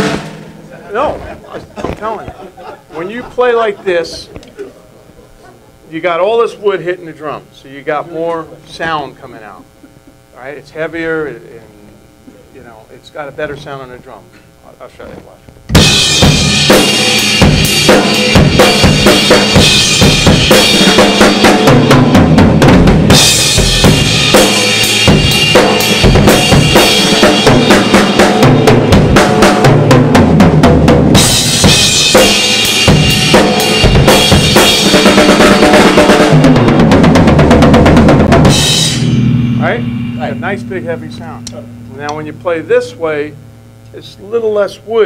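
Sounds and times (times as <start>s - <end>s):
rock drum groove: 0.0s - 13.8s, 15.0s - 45.0s
cymbals crashing: 15.7s - 22.3s, 23.0s - 30.2s, 31.1s - 36.7s, 38.4s - 45.0s.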